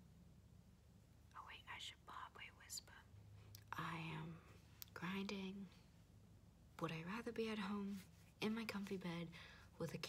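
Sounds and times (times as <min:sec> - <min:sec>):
person whispering: 0:01.3 - 0:03.1.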